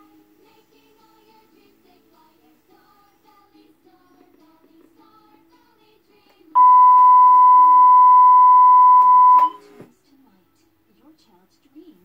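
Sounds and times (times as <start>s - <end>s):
steady electronic beep tone: 6.6s - 9.6s.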